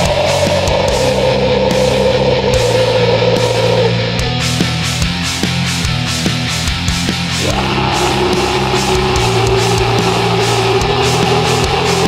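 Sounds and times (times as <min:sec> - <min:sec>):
bass and drums: 0:00.0 - 0:12.0
black metal band playing: 0:00.0 - 0:12.0
distorted electric guitars: 0:00.0 - 0:12.0.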